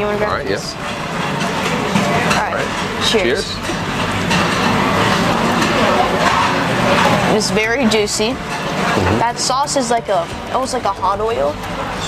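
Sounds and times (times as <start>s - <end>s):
indistinct voices of diners: 0.0s - 12.0s
restaurant background hum: 0.0s - 12.0s.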